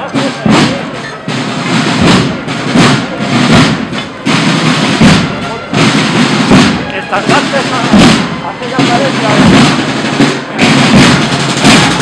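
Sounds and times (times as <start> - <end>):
procession drums beating a march: 0.0 - 12.0.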